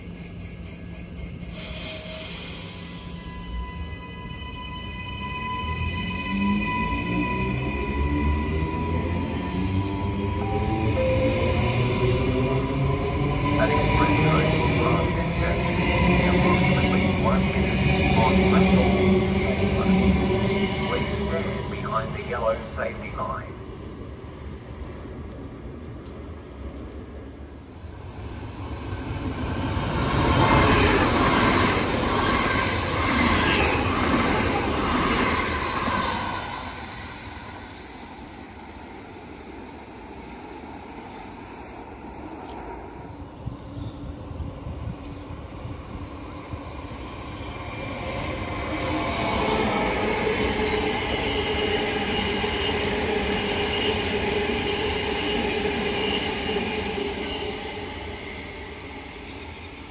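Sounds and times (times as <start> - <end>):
train whine and squeal: 0.0 - 59.9.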